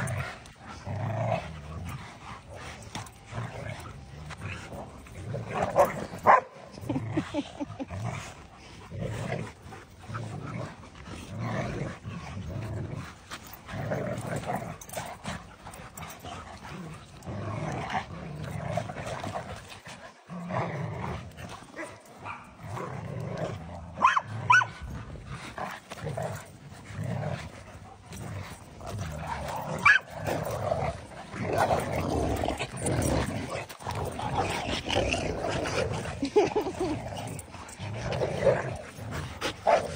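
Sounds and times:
dogs growling in play: 0.0s - 39.9s.

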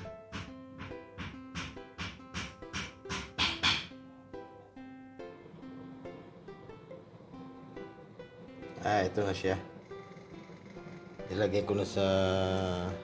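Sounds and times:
acoustic string instrument music: 0.0s - 13.0s.

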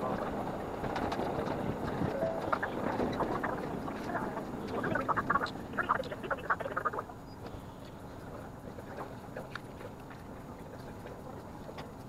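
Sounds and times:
sped-up railcar rumble and clatter: 0.0s - 6.2s.

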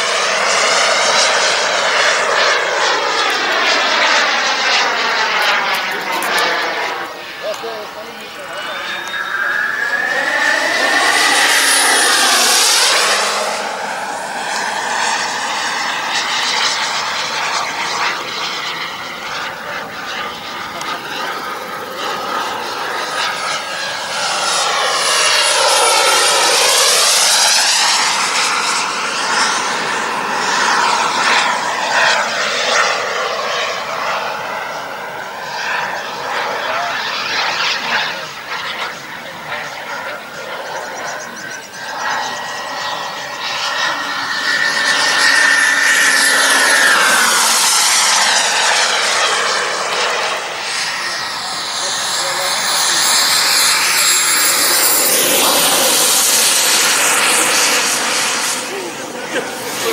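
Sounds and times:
model jet turbine flying past: 0.0s - 59.9s.

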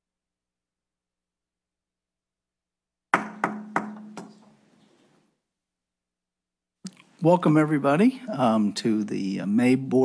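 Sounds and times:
wooden gavel rapping on table: 3.2s - 4.6s.

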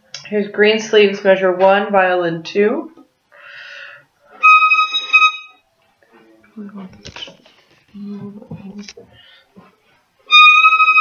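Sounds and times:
bow scratching: 4.3s - 5.6s
violin high note: 4.4s - 5.6s, 10.3s - 11.0s.

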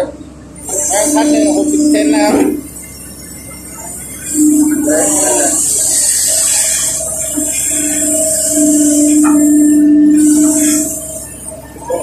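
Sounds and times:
excavator hydraulic whine: 0.0s - 12.0s.

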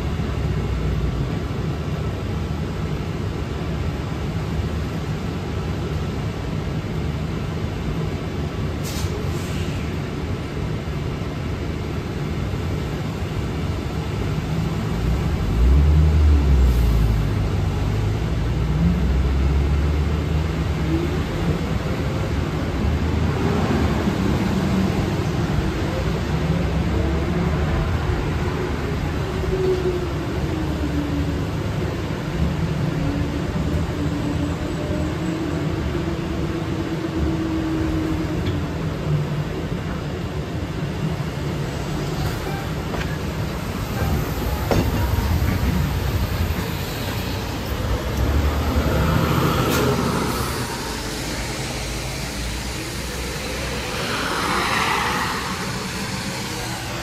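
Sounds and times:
bus road rumble: 0.0s - 57.0s.

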